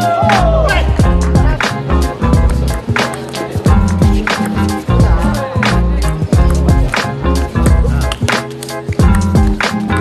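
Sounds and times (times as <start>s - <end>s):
music with steady beat: 0.0s - 10.0s.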